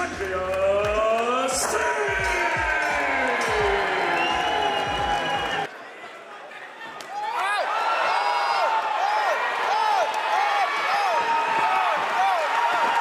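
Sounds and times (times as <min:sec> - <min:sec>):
crowd noise: 0:00.0 - 0:13.0.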